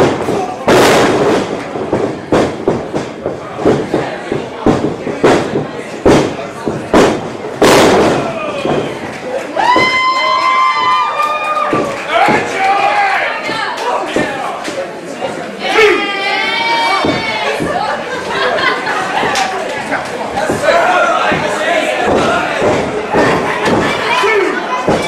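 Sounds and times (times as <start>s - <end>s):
thuds and slams on ring canvas: 0.0s - 9.0s, 20.4s - 24.1s
crowd noise: 0.0s - 25.0s.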